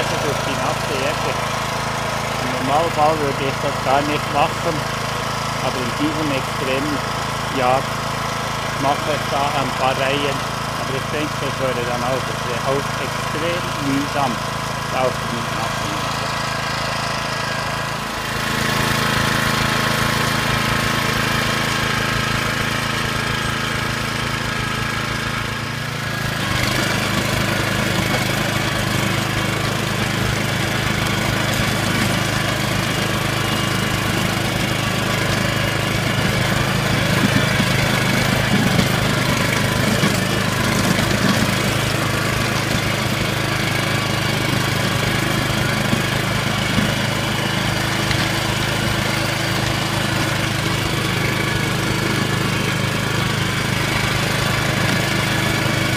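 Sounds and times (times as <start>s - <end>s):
tiller engine running: 0.0s - 55.9s
tines churning wet soil: 0.0s - 55.9s.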